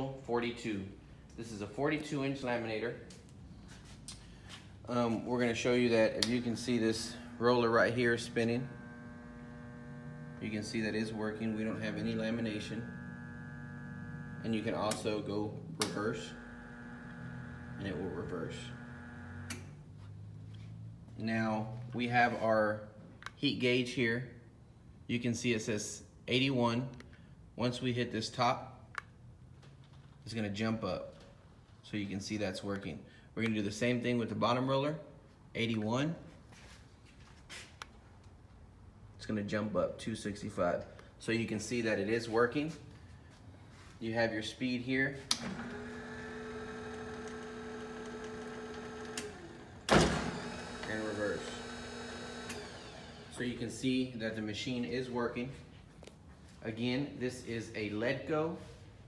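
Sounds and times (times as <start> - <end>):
laminator rollers humming: 6.4 - 19.7, 45.3 - 53.4.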